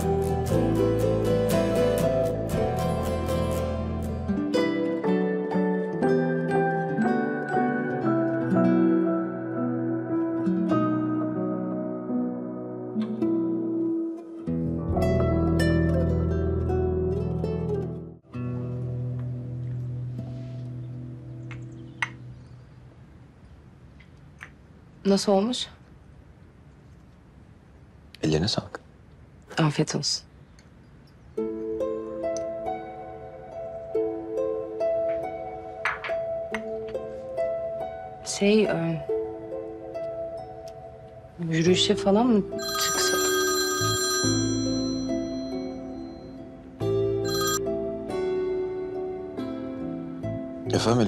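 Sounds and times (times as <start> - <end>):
soundtrack music: 0.0 - 13.9
phone ringtone melody: 42.6 - 46.4, 47.2 - 47.9.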